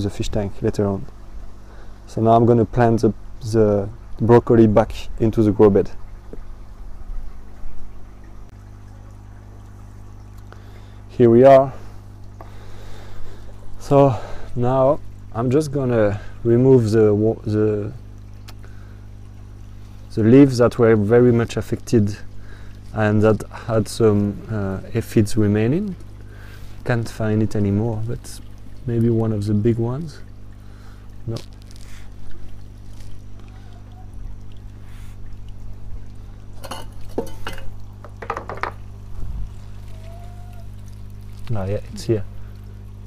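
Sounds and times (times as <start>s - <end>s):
steady low hum: 0.0s - 43.0s
water pouring: 7.5s - 43.0s.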